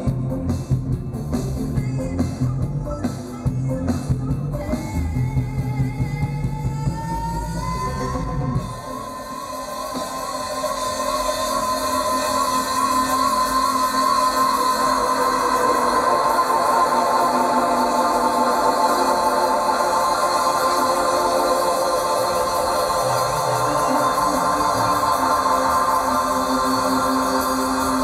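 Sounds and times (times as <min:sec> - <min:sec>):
drums and bass: 0:00.0 - 0:28.0
sustained synthesizer tone: 0:08.1 - 0:28.0.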